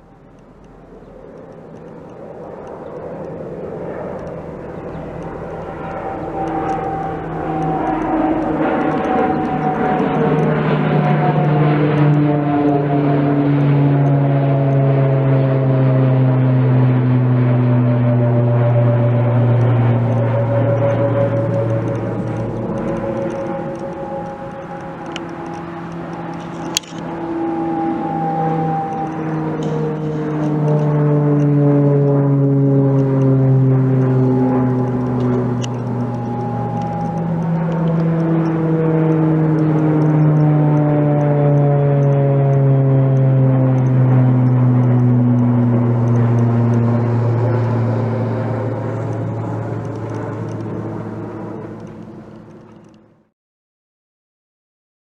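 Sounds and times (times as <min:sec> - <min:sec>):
propeller aircraft droning overhead: 0:00.0 - 0:53.3
sharp click: 0:26.3 - 0:27.1.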